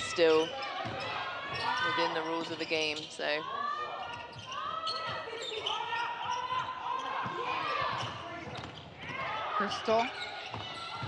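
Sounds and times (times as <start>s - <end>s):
players calling out: 0.0s - 11.0s
shoe squeaks on floor: 0.4s - 3.4s, 4.1s - 6.6s, 10.0s - 11.0s.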